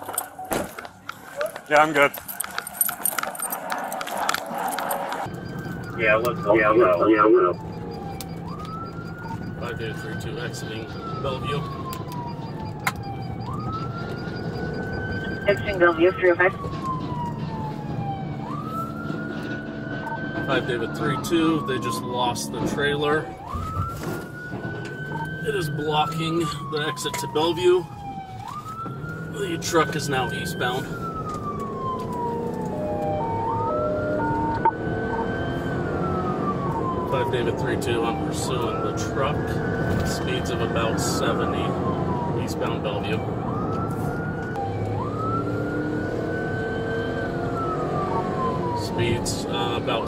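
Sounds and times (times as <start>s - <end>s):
car engine and road noise: 0.0s - 50.0s
high-low siren tones: 0.0s - 50.0s
police siren wailing: 0.0s - 50.0s.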